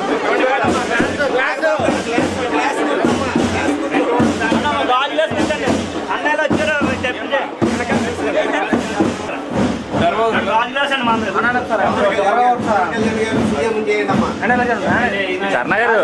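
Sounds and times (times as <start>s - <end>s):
voices talking: 0.0s - 16.0s.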